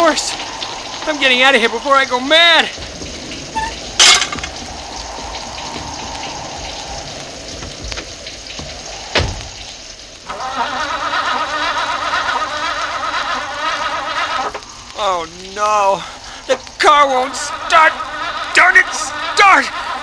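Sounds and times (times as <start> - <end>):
steady rain falling: 0.0 - 20.0
heavy thud: 9.1 - 9.4.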